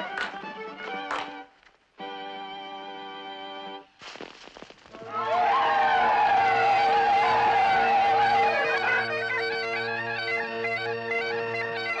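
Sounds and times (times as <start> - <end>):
bagpipe drones: 6.0 - 12.0
bagpipe chanter melody: 6.6 - 12.0.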